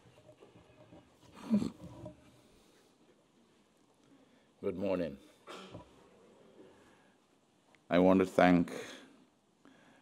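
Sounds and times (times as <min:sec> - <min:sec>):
man clearing throat: 0:05.4 - 0:05.9.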